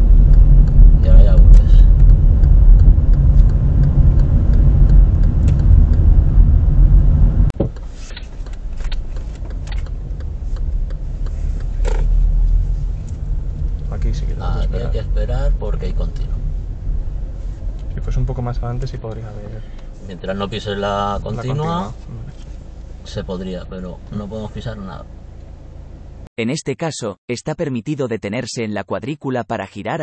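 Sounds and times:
car engine and road rumble: 0:00.0 - 0:26.3.

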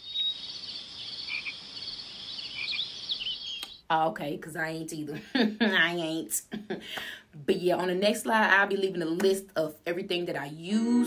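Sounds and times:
crickets chirping: 0:00.0 - 0:03.8
frog calls: 0:00.0 - 0:03.8.

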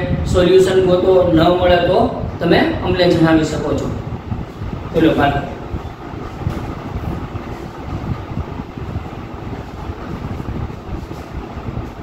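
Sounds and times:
low rumbling: 0:00.0 - 0:12.0.

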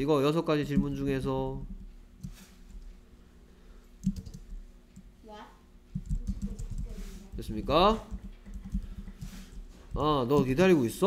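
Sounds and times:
computer keyboard typing: 0:04.0 - 0:05.1, 0:05.9 - 0:10.5.

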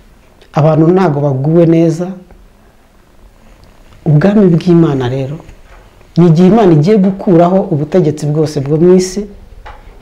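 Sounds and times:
man speaking: 0:00.5 - 0:02.3, 0:04.0 - 0:05.6, 0:06.2 - 0:09.4.

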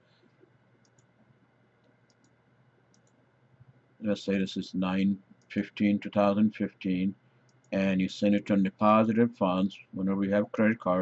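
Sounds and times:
computer mouse clicks: 0:00.3 - 0:01.2, 0:01.8 - 0:03.2, 0:07.4 - 0:07.7.

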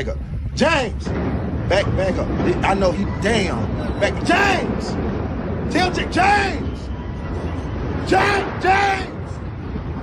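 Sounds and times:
truck rumbling: 0:00.0 - 0:10.0
man shouting: 0:08.1 - 0:09.2.

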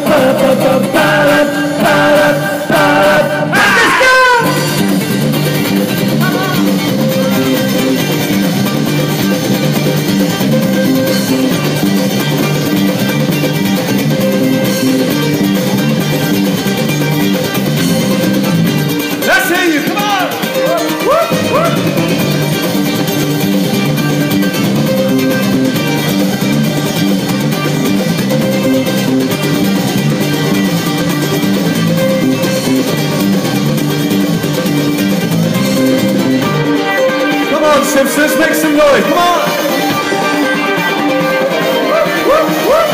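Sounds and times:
ukulele band playing: 0:00.0 - 0:42.9
person speaking: 0:06.2 - 0:06.7, 0:19.2 - 0:22.0, 0:37.5 - 0:39.6.

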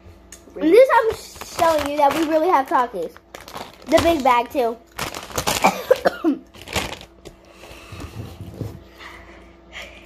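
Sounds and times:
child coughing: 0:05.5 - 0:06.5.

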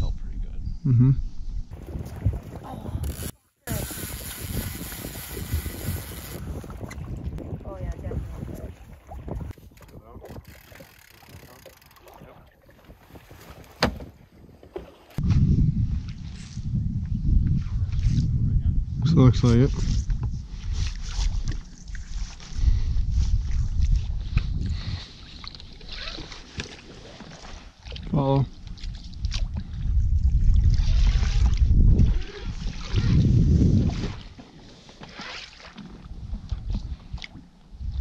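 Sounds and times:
wind rumbling on microphone: 0:00.0 - 0:26.8, 0:27.4 - 0:34.5, 0:36.0 - 0:38.0.

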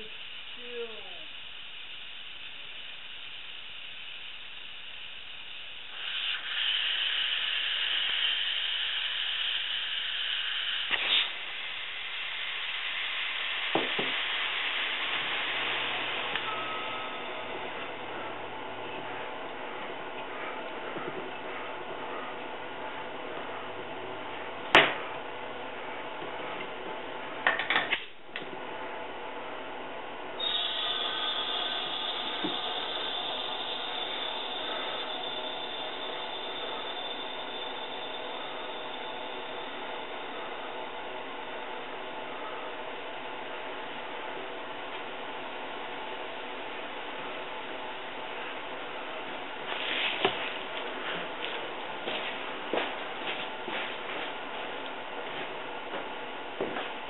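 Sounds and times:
compressed air hissing: 0:00.0 - 0:17.7, 0:30.4 - 0:41.2.

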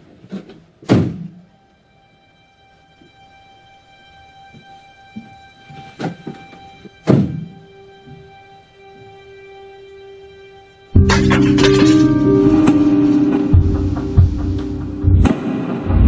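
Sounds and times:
sharp thunk: 0:00.8 - 0:01.4, 0:07.0 - 0:07.5
heavy thud: 0:00.9 - 0:01.4
sustained orchestral tones: 0:01.4 - 0:16.0.

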